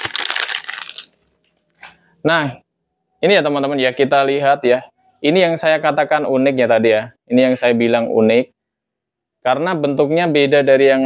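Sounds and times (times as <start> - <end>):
plastic packaging crinkling: 0.0 - 2.0.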